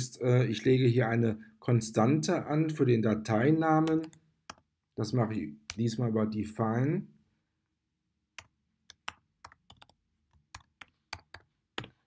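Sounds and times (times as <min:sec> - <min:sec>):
computer keyboard keystrokes: 0:08.4 - 0:12.0.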